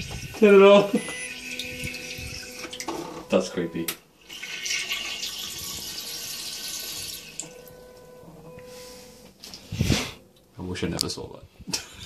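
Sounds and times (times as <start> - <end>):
toilet flushing water rushing: 0.0 - 3.3, 4.2 - 7.6.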